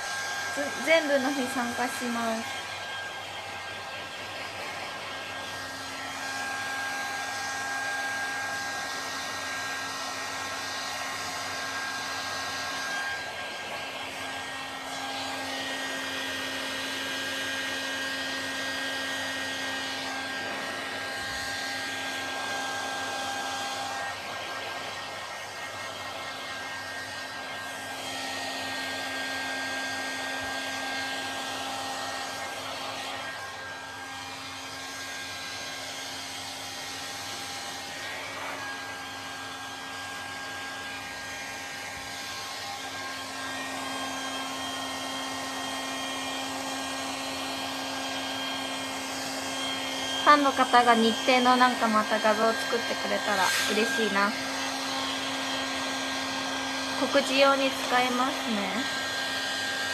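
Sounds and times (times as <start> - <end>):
hair dryer running: 0.0 - 59.9.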